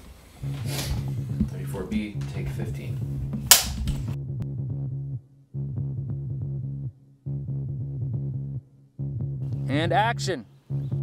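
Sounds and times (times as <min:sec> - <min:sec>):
clapperboard snapping shut: 0:03.5 - 0:04.1.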